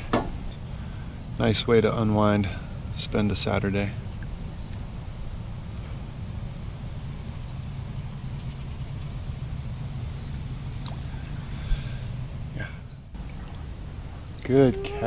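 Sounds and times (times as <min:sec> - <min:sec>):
high even hiss: 0:00.5 - 0:13.2.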